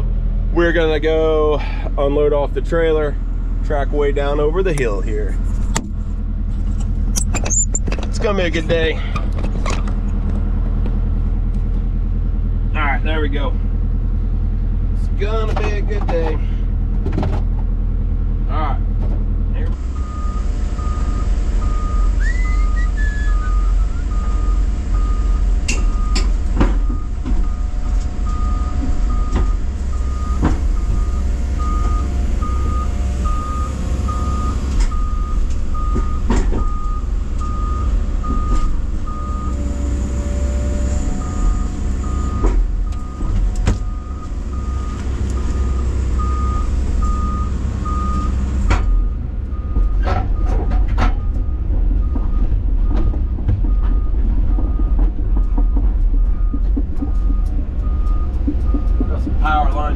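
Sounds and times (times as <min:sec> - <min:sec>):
excavator diesel engine: 0:00.0 - 0:59.9
clunks and knocks: 0:04.7 - 0:11.0, 0:15.3 - 0:17.8, 0:18.9 - 0:19.8, 0:25.0 - 0:46.3, 0:47.0 - 0:59.7
travel alarm beeping: 0:20.0 - 0:39.8, 0:41.2 - 0:50.5.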